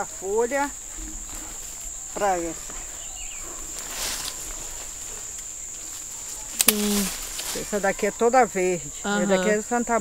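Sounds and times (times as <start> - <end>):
insect high-pitched trill: 0.0 - 10.0.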